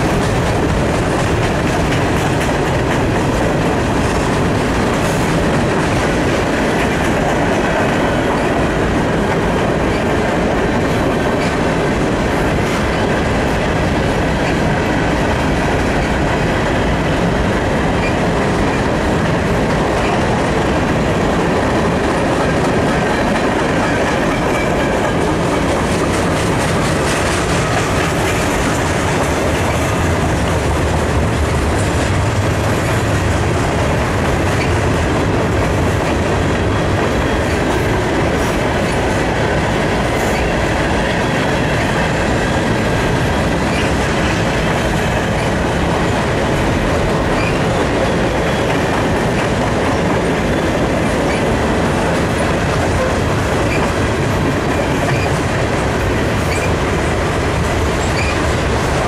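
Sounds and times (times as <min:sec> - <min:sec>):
clickety-clack over rail joints: 0:00.0 - 0:59.0
train wheels rumbling on rails: 0:00.0 - 0:59.0.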